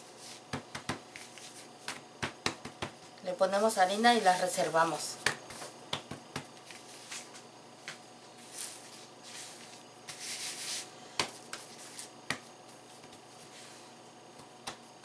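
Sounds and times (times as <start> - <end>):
hands tapping bread dough: 0.5 - 3.0, 5.2 - 6.6, 11.2 - 13.2, 14.4 - 14.8
hands rubbing dough: 8.3 - 14.0.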